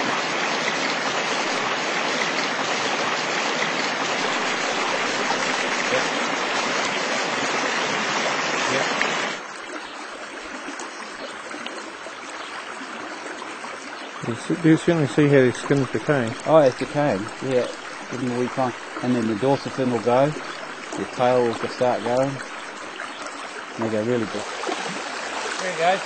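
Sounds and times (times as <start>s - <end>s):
river water rushing: 0.0s - 26.0s.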